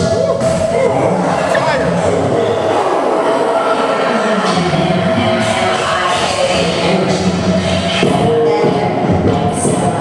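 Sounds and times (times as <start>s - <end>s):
loud music over sound system: 0.0s - 10.0s.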